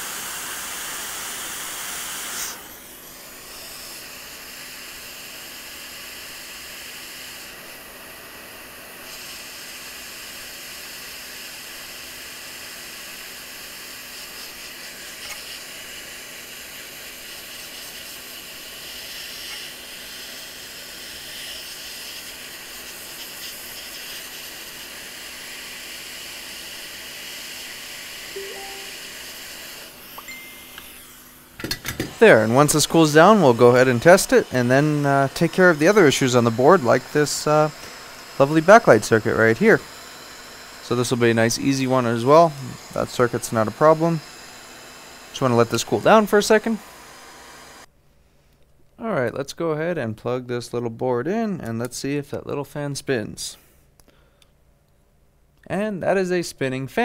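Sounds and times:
hot air blower hissing: 0:00.0 - 0:47.9.

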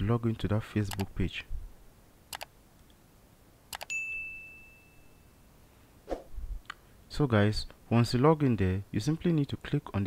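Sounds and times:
computer mouse clicks: 0:00.9 - 0:01.1, 0:02.3 - 0:02.5.

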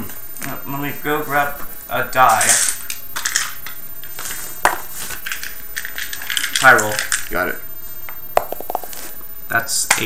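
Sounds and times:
small objects rattling and rustling: 0:04.2 - 0:07.4.

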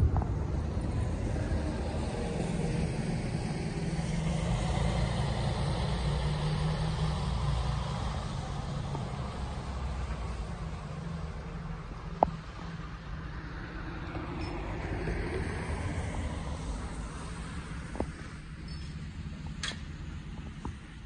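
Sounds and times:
vehicle engine and tyres on road: 0:00.0 - 0:21.0.

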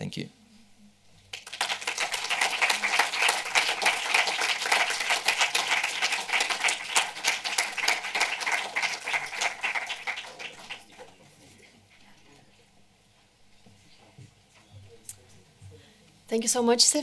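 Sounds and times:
audience applauding: 0:01.3 - 0:11.4.

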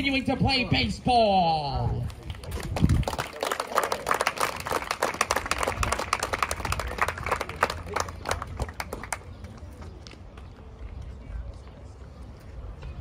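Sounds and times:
people clapping: 0:02.0 - 0:10.5.

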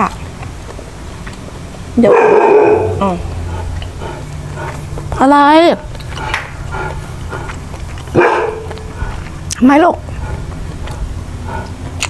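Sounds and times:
dog barking: 0:02.0 - 0:03.0, 0:08.1 - 0:09.0.

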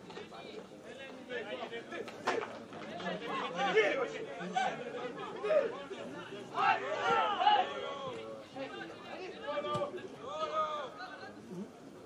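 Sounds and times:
voices calling out and chattering: 0:00.0 - 0:12.0.

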